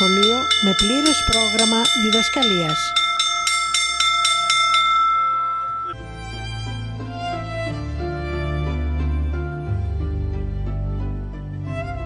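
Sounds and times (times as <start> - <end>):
hand bell ringing: 0.0 - 6.0.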